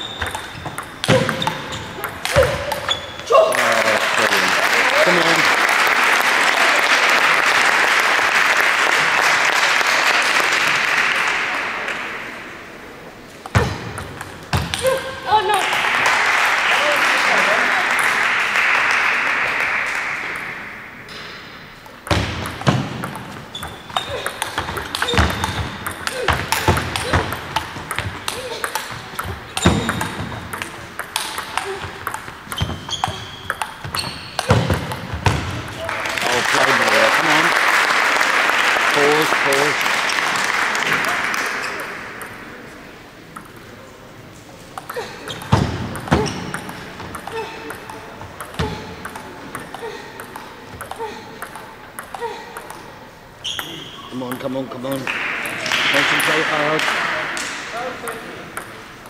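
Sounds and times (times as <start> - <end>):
table tennis ball hits: 0.0 - 5.1, 13.4 - 16.2, 17.3 - 18.4, 19.9 - 37.5, 38.9 - 43.8, 44.7 - 59.0.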